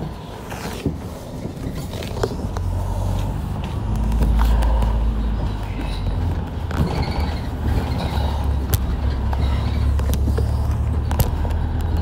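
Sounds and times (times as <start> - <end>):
road noise: 0.0 - 12.0
low engine drone: 1.1 - 12.0.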